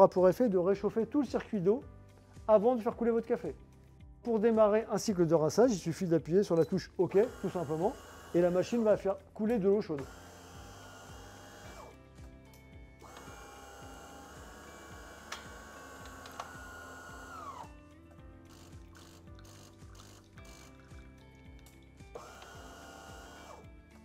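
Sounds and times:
espresso machine pump humming: 0:07.2 - 0:08.6, 0:10.0 - 0:12.0, 0:13.0 - 0:17.7, 0:18.5 - 0:21.1, 0:22.2 - 0:23.7.

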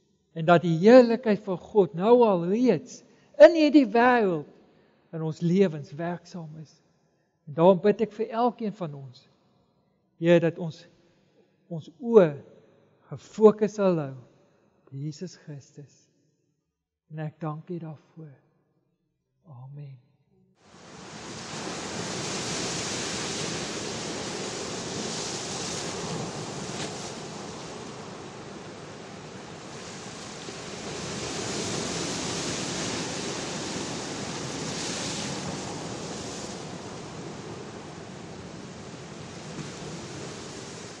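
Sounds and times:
waves washing on shore: 0:20.6 - 0:41.0.

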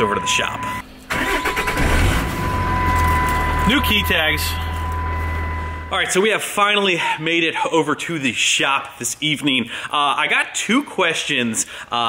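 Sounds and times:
diesel engine cranking and idling: 0:00.8 - 0:06.0.

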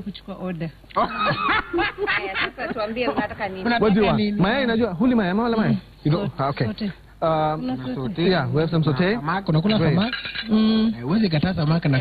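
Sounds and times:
people laughing: 0:01.0 - 0:04.1
people talking: 0:02.1 - 0:05.0.

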